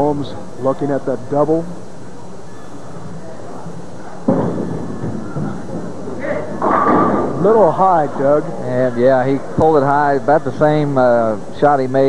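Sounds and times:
bowling ball thud and rolling: 0:04.2 - 0:07.8
bowling pins crashing: 0:04.2 - 0:08.4.

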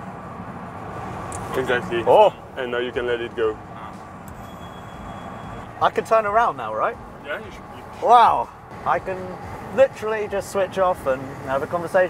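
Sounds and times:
road and wind noise in car: 0:00.0 - 0:12.0.

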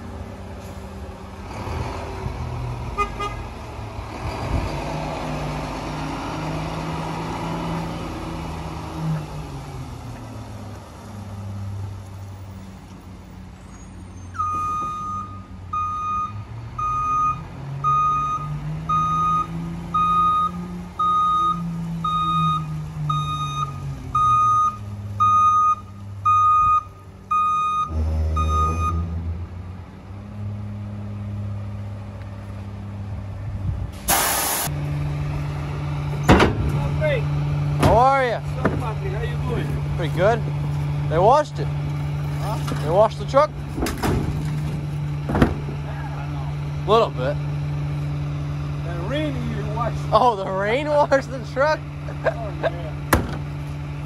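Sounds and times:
garbage truck diesel engine revving: 0:00.0 - 0:12.0, 0:27.8 - 0:54.0
reversing alarm beeping: 0:14.3 - 0:29.1
loud burst of noise: 0:34.0 - 0:34.7.

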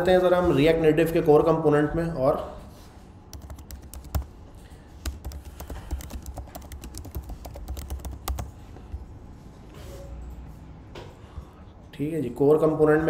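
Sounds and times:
computer keyboard typing: 0:03.3 - 0:04.4, 0:05.0 - 0:08.6.

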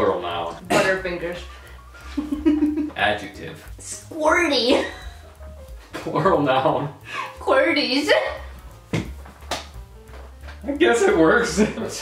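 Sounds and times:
people laughing: 0:02.1 - 0:03.0.

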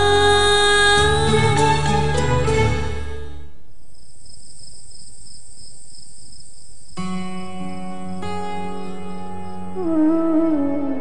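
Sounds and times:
crickets chirping: 0:03.7 - 0:10.4.

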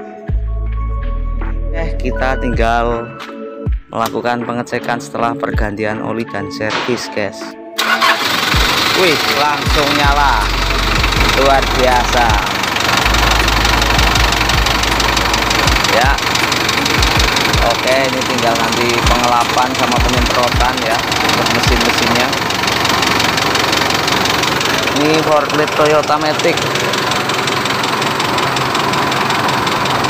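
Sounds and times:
forklift diesel engine running: 0:07.8 - 0:30.0.

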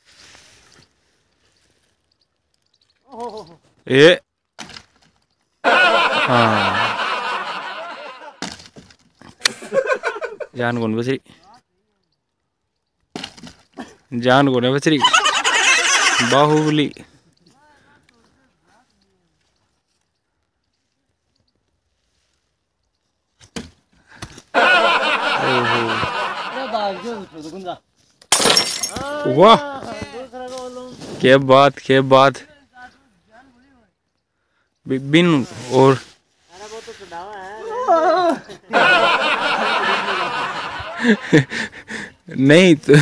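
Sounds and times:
person laughing in quavering chuckle: 0:05.6 - 0:08.4, 0:15.0 - 0:16.8, 0:24.6 - 0:27.2, 0:37.9 - 0:42.1
crash of something breaking: 0:28.3 - 0:29.2.

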